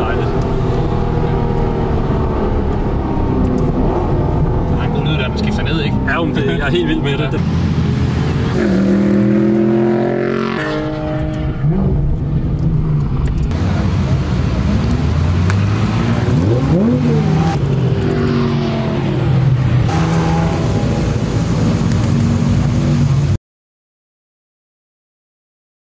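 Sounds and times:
car engine running and revving: 0.0s - 23.4s.

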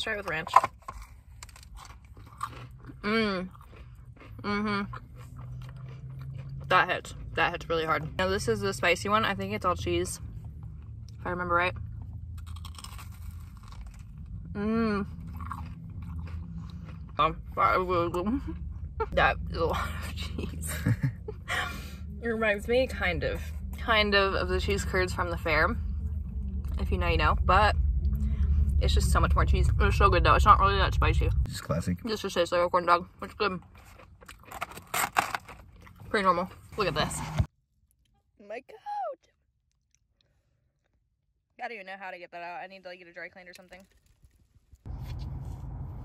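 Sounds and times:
crunchy bite and chewing: 0.5s - 7.3s, 12.3s - 14.4s, 15.1s - 17.2s, 33.8s - 36.1s.

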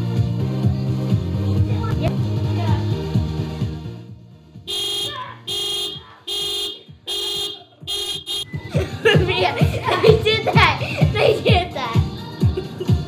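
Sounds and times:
car horn honking in pulses: 4.7s - 8.7s
children's voices: 8.8s - 12.1s.

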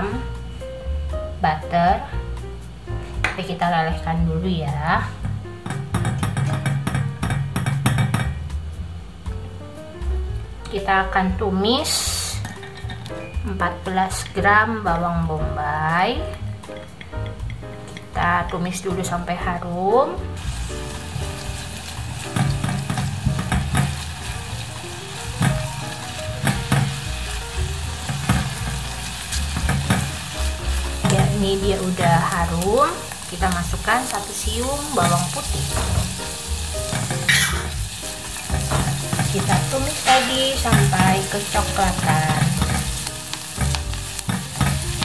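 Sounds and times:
onion sizzling in butter: 0.0s - 15.0s, 20.3s - 45.0s
background music: 0.0s - 45.0s
spatula scraping pan: 36.9s - 41.3s.

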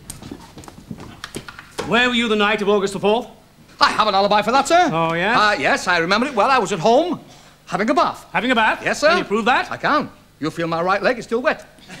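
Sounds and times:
footsteps on hard stage floor: 0.0s - 2.0s.

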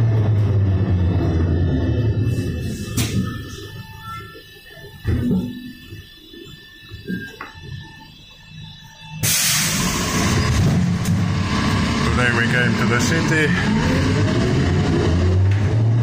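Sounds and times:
low rumble: 0.0s - 3.9s, 9.7s - 16.0s
steady whine of fixed tones: 0.0s - 15.7s
loud steady rushing noise: 9.2s - 16.0s.

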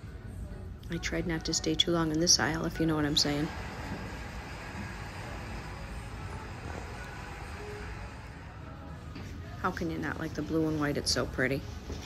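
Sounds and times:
air handling rumble and hiss: 0.0s - 12.0s.

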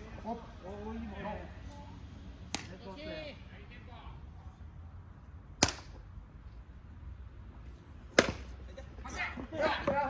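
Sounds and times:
faint outdoor background: 0.0s - 10.0s
bat hitting baseball: 5.6s - 6.0s, 8.1s - 8.5s
sharp crack: 5.6s - 6.0s, 8.1s - 8.5s.

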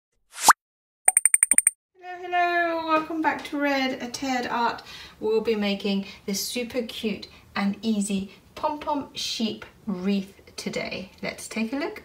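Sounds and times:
rising pitch cartoon pop: 0.3s - 1.7s.

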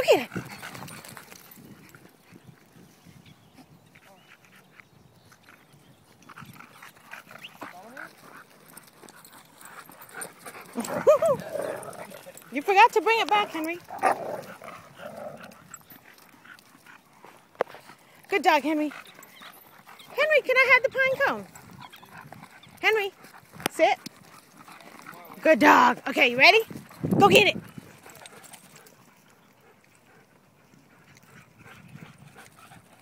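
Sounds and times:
dogs running on mulch: 0.0s - 2.8s, 5.4s - 29.8s.

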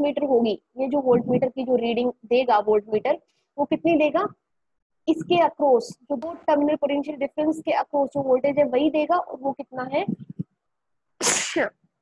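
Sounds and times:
person speaking: 0.0s - 4.5s, 5.1s - 10.6s
person sneezing: 11.2s - 11.8s.

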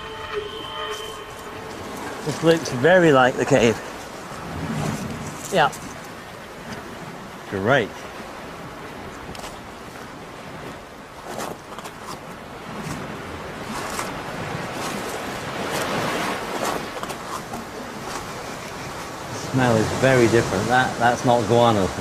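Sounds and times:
surf washing on rocky shore: 0.0s - 22.0s.

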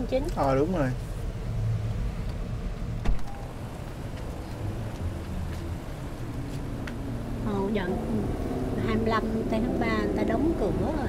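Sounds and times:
car engine rumble inside cabin: 0.0s - 11.0s.

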